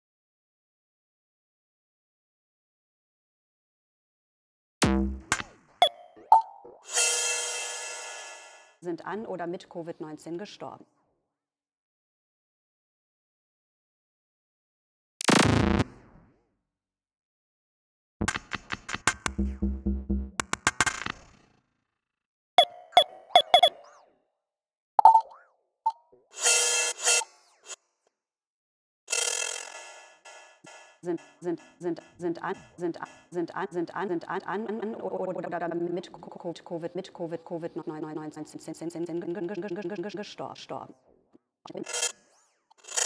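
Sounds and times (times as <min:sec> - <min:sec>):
electronic percussion hits: 0:04.8 - 0:05.6, 0:18.2 - 0:21.2
short pitched electronic blip: 0:04.8 - 0:06.5
small electronic blip: 0:22.6 - 0:23.8, 0:25.0 - 0:26.0.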